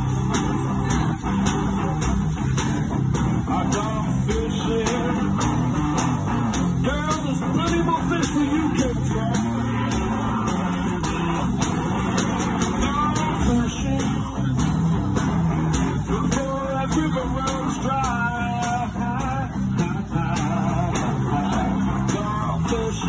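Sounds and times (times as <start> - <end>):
bass line: 0.0 - 23.0
steady drum beat: 0.0 - 23.0.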